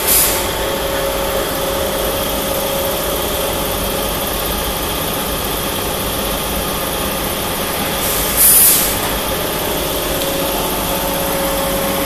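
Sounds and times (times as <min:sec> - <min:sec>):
machinery droning: 0:00.0 - 0:12.0.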